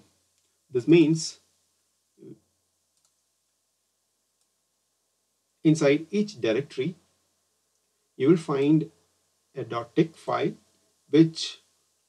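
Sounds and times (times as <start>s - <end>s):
computer mouse clicks: 2.9s - 3.3s, 4.4s - 4.6s.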